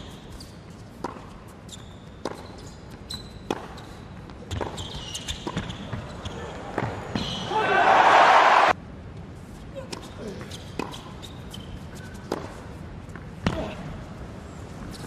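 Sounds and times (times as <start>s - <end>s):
shoes squeaking on court: 0.0s - 7.5s, 10.0s - 13.8s, 14.5s - 15.0s
racket striking tennis ball: 3.4s - 5.7s
crowd cheering: 7.5s - 8.8s.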